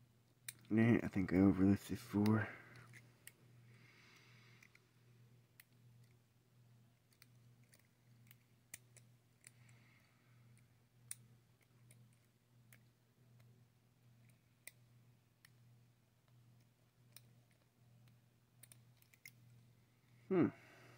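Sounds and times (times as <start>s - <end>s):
steady low hum: 0.0s - 20.9s
lock pick metal clicks: 0.4s - 0.7s, 16.3s - 19.4s.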